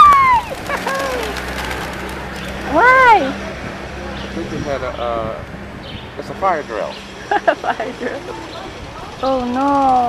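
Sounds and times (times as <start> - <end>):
pigeon wingbeats: 0.0 - 2.7
voices calling out: 0.0 - 10.0.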